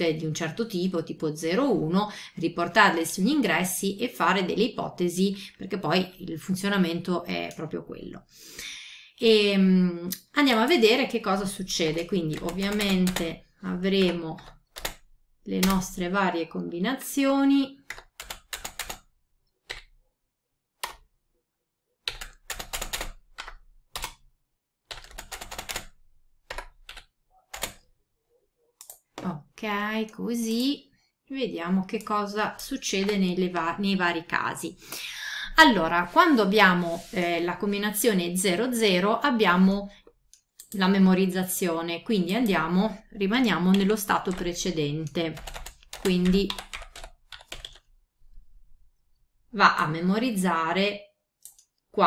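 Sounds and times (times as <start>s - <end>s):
typing on computer keyboard: 11.8s - 13.4s, 14.0s - 16.0s, 17.8s - 20.0s, 22.0s - 24.3s, 24.9s - 27.9s, 45.3s - 47.9s.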